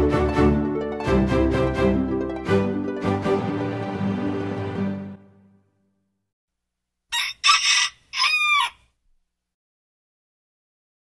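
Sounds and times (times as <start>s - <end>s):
rooster crowing: 7.1s - 8.9s.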